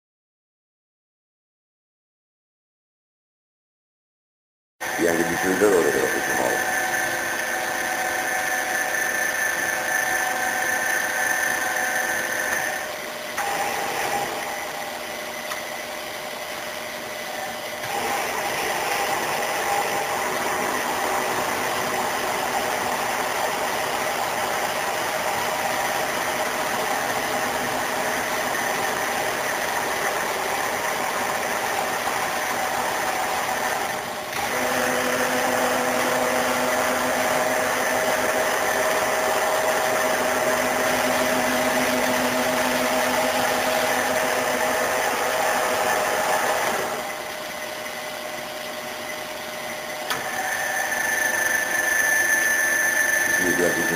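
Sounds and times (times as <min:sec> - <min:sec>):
milling machine hum and gear whine: 0:04.8 - 0:53.9.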